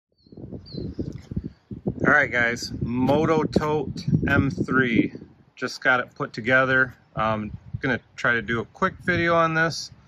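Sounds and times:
faint bird chirps: 0.2s - 1.7s
wind buffeting microphone: 0.2s - 10.0s.

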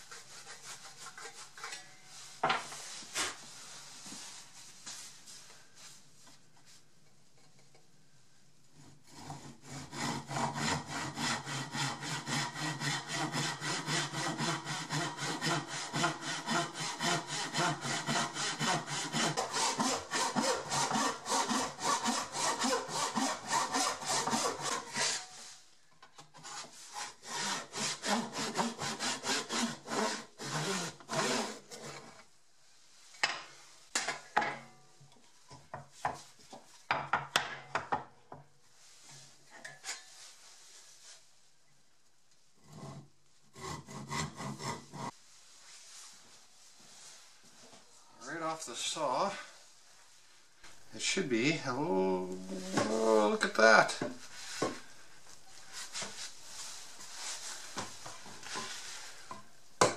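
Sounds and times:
hand saw cutting wood: 8.8s - 25.4s, 26.4s - 32.1s, 42.7s - 45.1s.

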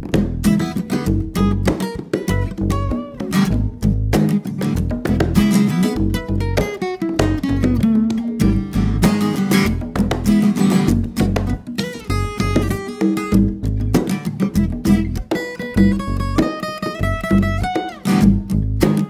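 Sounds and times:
acoustic guitar strumming: 0.0s - 19.0s
bass guitar: 0.0s - 19.0s
hand percussion: 0.0s - 19.0s.

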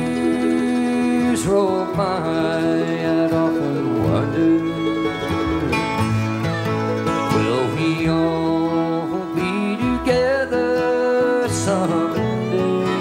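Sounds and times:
acoustic guitar lead: 0.0s - 13.0s
bluegrass string band: 0.0s - 13.0s.

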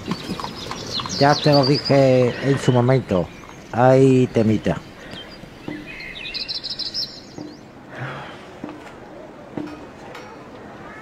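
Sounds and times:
bird chirping rapidly: 0.0s - 7.8s.

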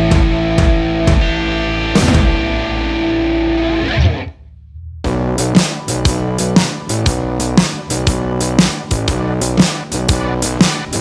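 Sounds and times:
rock music with electric guitar: 0.0s - 4.5s, 5.1s - 11.0s.

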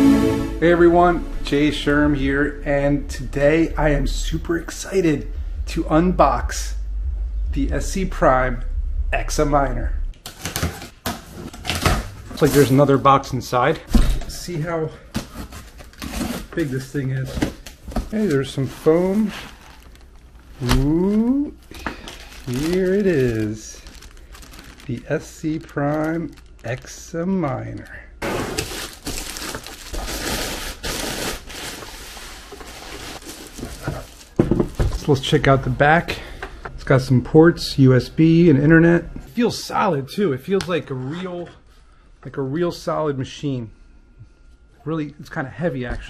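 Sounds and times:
plastic bag crinkling: 15.6s - 27.8s, 28.4s - 34.4s
packing tape ripping: 28.5s - 32.0s.

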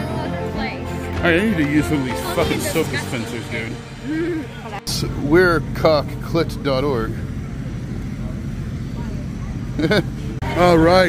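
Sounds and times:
low rumble with faint hum: 3.6s - 11.0s.

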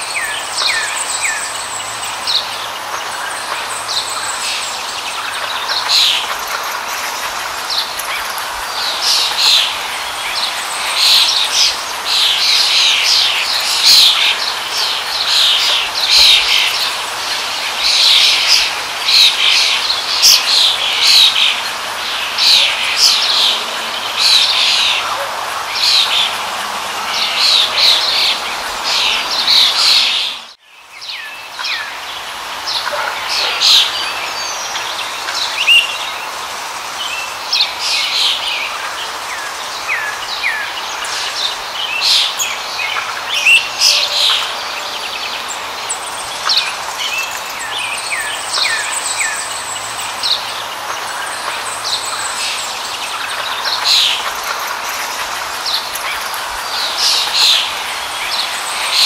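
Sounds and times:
songbirds chirping: 0.0s - 59.0s
steady background hiss: 0.0s - 59.0s.

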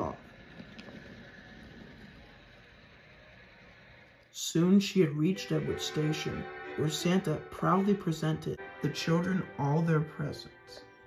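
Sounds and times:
toy wheels rolling on wooden floor: 0.0s - 4.2s.

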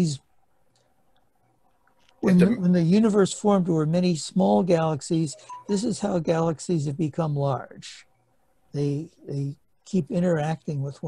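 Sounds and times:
faint steady hum: 0.0s - 11.0s
man's voice: 2.2s - 3.3s, 4.9s - 7.9s.

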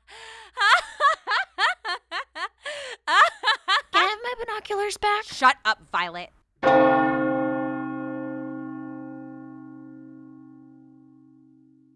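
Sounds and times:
deep bell toll: 6.6s - 11.9s.

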